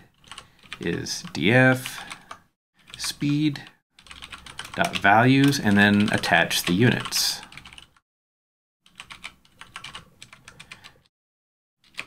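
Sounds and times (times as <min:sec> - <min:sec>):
typing on computer keyboard: 0:00.2 - 0:03.1, 0:04.0 - 0:08.0, 0:08.8 - 0:11.1.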